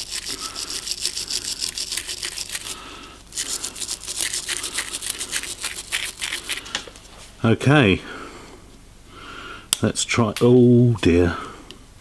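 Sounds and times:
wire brush scrubbing metal: 0.0s - 6.6s.

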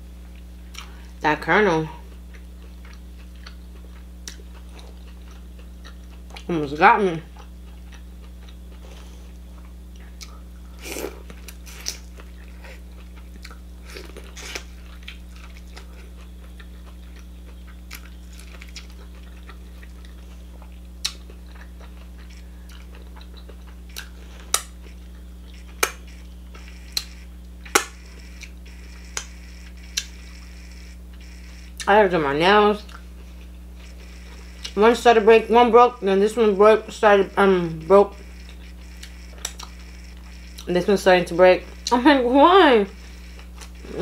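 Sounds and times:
low electrical hum: 0.0s - 44.0s
chewing corn on the cob: 2.0s - 6.5s, 7.3s - 30.2s, 38.1s - 40.7s.

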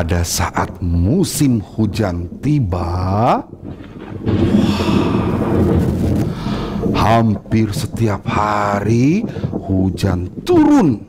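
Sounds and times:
rolling thunder rumble: 0.0s - 11.0s.

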